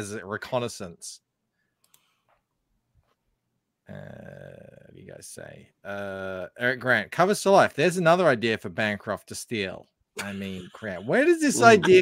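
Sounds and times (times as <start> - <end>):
faint clicks: 1.8 - 2.4
man saying uh: 3.9 - 6.6, 10.2 - 12.0.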